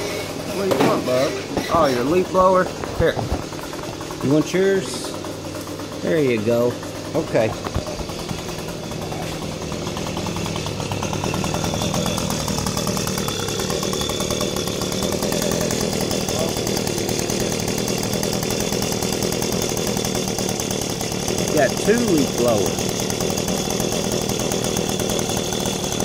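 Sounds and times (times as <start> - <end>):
leaf blower motor running: 0.0 - 26.0.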